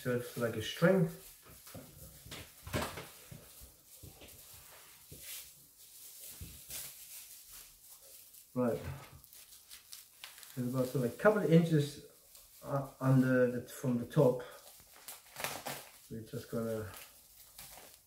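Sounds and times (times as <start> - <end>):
plastic strip crinkling: 0.3 - 13.2, 14.5 - 18.0.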